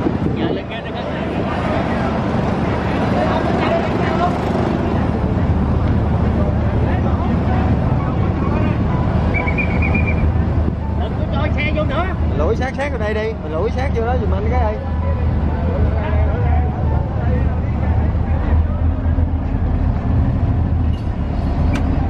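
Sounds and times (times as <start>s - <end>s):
ferry engines rumbling: 0.0s - 22.0s.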